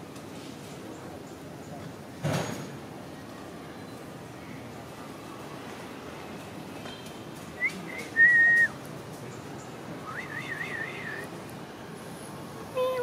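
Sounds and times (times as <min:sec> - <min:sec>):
person whistling: 0:07.6 - 0:08.7.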